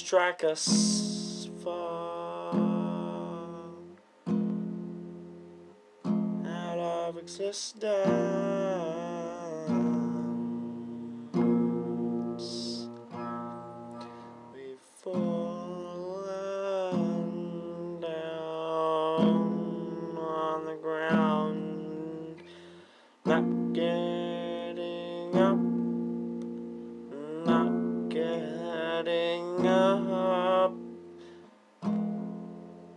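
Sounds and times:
man singing long sliding notes: 0.0 - 4.0, 6.4 - 25.8, 27.0 - 31.0
acoustic guitar strummed: 0.0 - 32.9.

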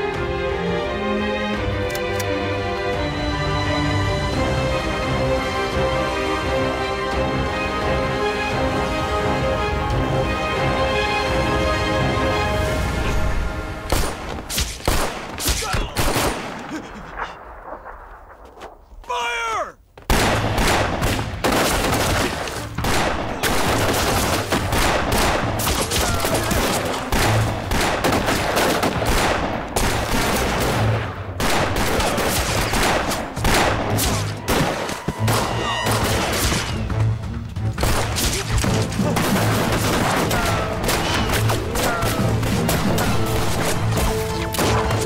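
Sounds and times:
pistol shots: 13.9 - 16.6
heavy rapid gunfire: 20.1 - 36.6, 39.1 - 43.7.

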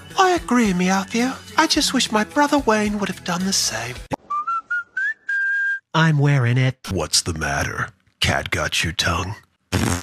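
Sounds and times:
person whistling: 4.2 - 5.9.

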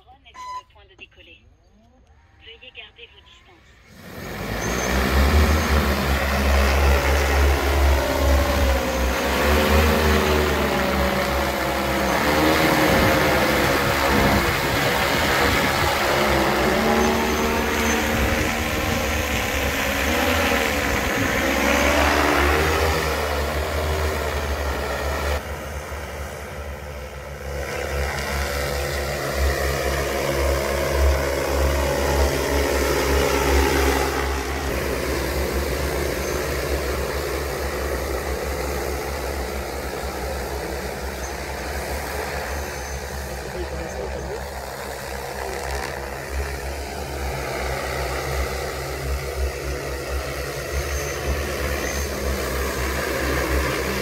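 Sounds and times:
drone rotors humming and whining: 3.6 - 54.0.

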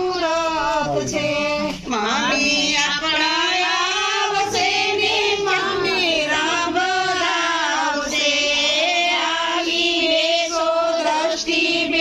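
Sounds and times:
women singing folk song: 0.0 - 12.0.

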